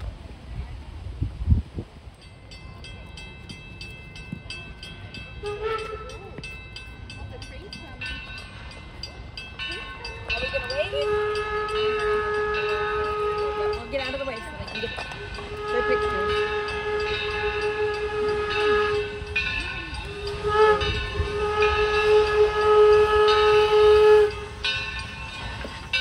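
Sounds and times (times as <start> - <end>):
steam locomotive approaching: 0.0 - 26.0
locomotive bell ringing: 2.1 - 26.0
steam whistle blasts: 5.4 - 6.4, 10.6 - 14.3, 15.2 - 26.0.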